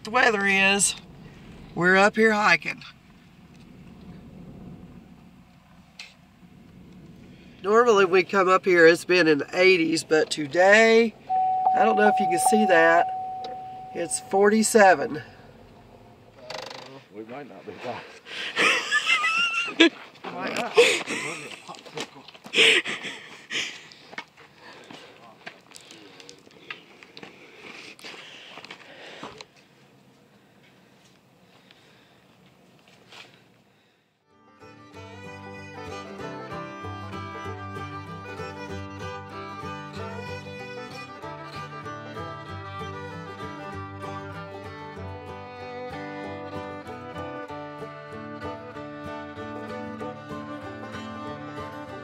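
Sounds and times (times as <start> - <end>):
car cabin low rumble: 0.4 - 8.4, 11.1 - 16.4.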